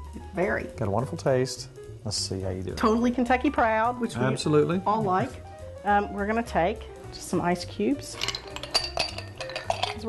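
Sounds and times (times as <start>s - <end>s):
ice cubes clinking into glass: 8.1s - 10.0s.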